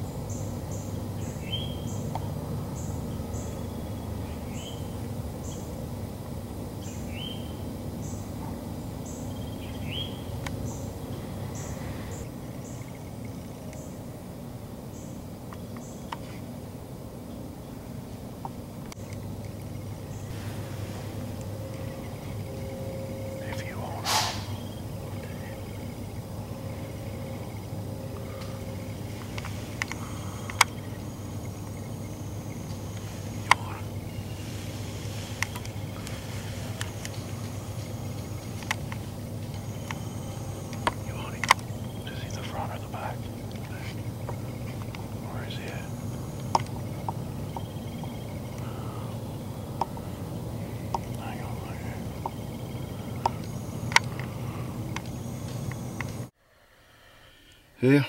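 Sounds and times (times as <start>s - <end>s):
bird chirps: 0.0s - 5.7s, 6.8s - 8.3s, 8.9s - 14.0s, 19.8s - 38.8s, 39.5s - 55.8s
steady low hum: 0.0s - 58.0s
brief rustle: 24.0s - 24.6s
sharp clicks: 29.2s - 31.0s, 36.8s - 42.4s.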